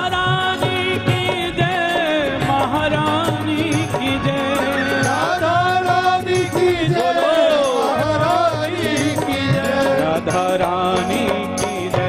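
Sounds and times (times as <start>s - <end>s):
steady percussion beat: 0.0s - 12.0s.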